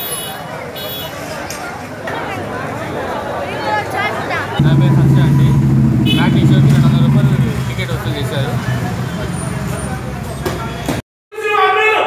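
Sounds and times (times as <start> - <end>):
crowd chattering: 0.0 - 11.0
vehicle engine running: 4.6 - 10.4.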